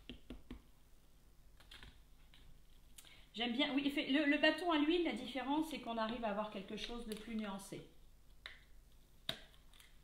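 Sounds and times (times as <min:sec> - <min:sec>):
stencil brush tapping plastic: 0:00.0 - 0:00.7.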